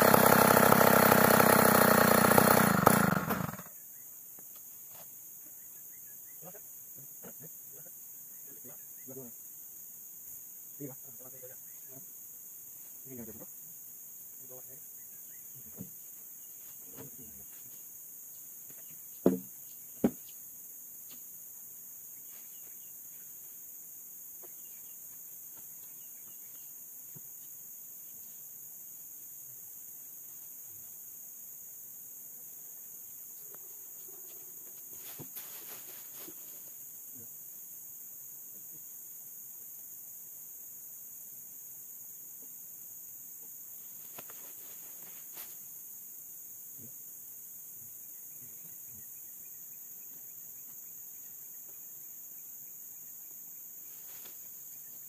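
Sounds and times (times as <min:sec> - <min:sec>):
insects buzzing: 0:00.0 - 0:55.0
knocks and rustles: 0:34.9 - 0:36.5.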